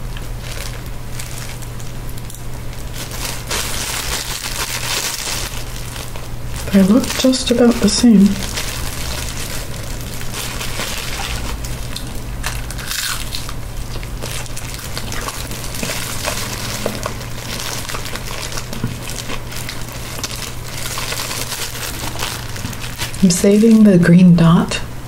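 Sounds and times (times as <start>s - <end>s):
crisp spring roll crackling: 0.0s - 23.9s
plastic gloves crinkling: 0.0s - 24.4s
low steady hum: 0.0s - 25.0s.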